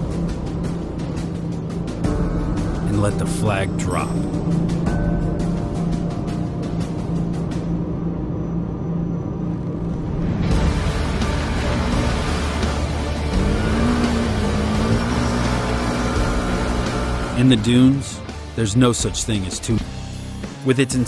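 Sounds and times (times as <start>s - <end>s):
dramatic background music: 0.0s - 21.0s
utility vehicle engines revving: 0.0s - 21.0s.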